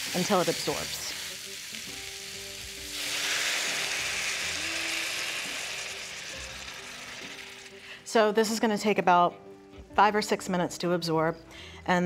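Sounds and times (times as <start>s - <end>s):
vegetables sizzling in a skillet: 0.0s - 8.1s.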